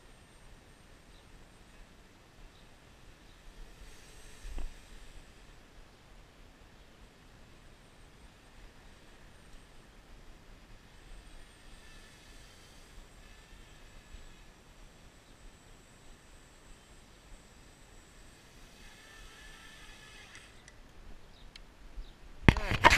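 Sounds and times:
quadcopter motors whining: 0.0s - 5.9s, 7.5s - 21.6s.

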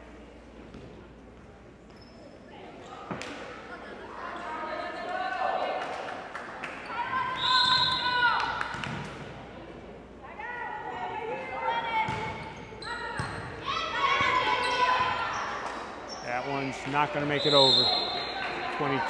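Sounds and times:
voices in gym: 0.0s - 19.0s
sneakers squeaking on floor: 1.8s - 3.2s, 12.1s - 18.4s.

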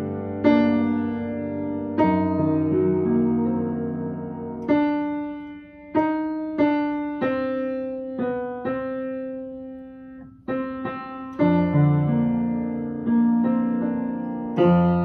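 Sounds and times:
slow piano hymn: 0.0s - 15.0s.

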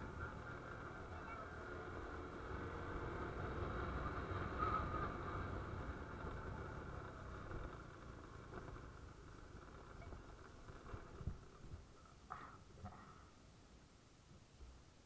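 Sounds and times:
motorcycle engine running: 0.0s - 12.0s.

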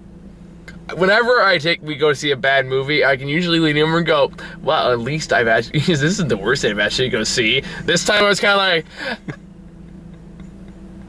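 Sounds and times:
low hum in car cabin: 0.0s - 11.0s.

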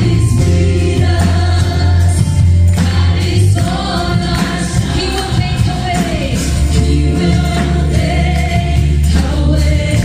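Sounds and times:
backing singers: 0.0s - 10.0s
live gospel band: 0.0s - 10.0s
woman singing lead: 0.0s - 10.0s.

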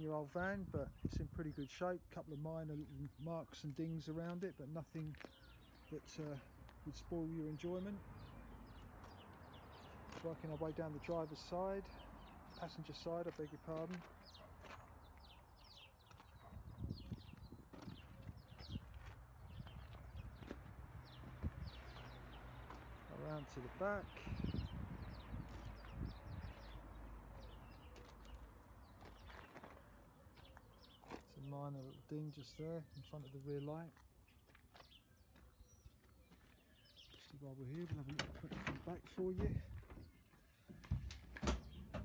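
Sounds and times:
small birds chirping: 0.8s - 42.0s
footsteps on tarmac: 2.7s - 31.5s, 33.3s - 42.0s.

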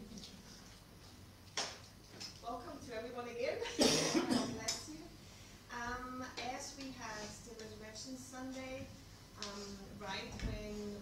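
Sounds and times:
person coughing loudly: 3.7s - 4.7s.

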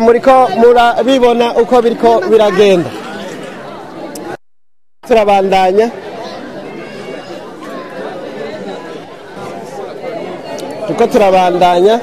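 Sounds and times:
crowd chatter: 0.0s - 4.4s, 5.0s - 12.0s.

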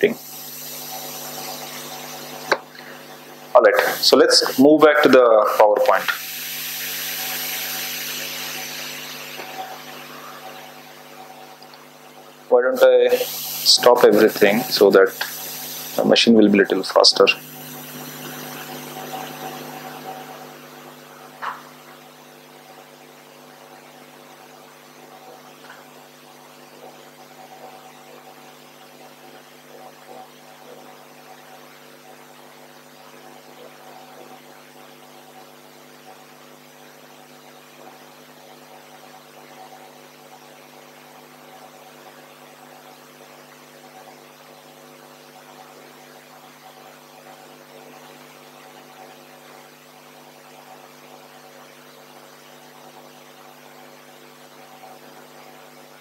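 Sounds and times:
electrical hum: 0.0s - 56.0s
faint hiss: 3.7s - 10.4s, 13.0s - 16.2s.

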